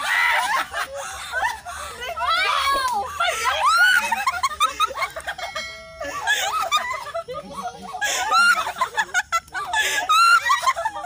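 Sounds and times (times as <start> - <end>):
people laughing together: 0.0 - 11.0.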